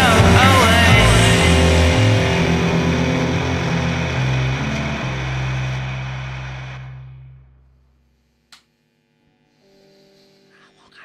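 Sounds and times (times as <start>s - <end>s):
distorted guitar and bass chord: 0.0s - 10.5s.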